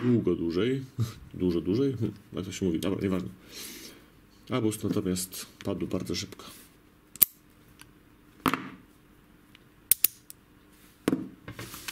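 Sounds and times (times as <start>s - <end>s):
padlock metallic clicks: 7.2s - 7.4s, 9.9s - 10.4s.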